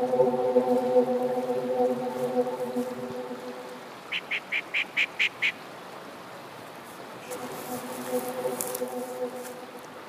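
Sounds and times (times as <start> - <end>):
river rushing: 1.2 - 10.0.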